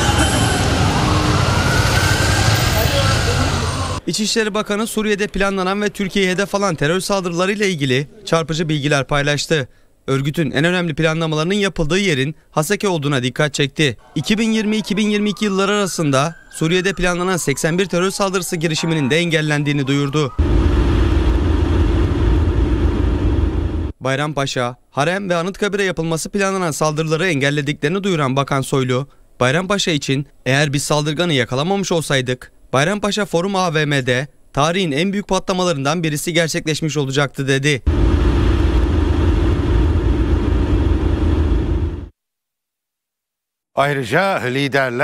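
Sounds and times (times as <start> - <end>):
faint siren: 0.0 - 4.0, 14.0 - 23.7
traffic: 0.0 - 4.0
street noise: 0.0 - 4.2.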